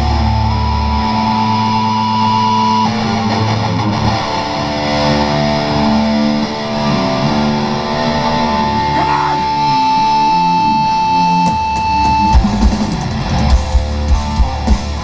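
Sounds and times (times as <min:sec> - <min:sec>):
distorted electric guitars: 0:00.0 - 0:15.0
heavy metal band playing live: 0:00.0 - 0:15.0.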